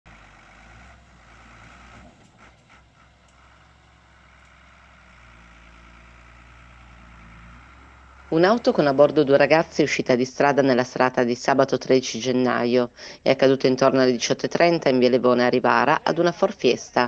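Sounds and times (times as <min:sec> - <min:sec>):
diesel engine idling: 0:00.1 - 0:17.0.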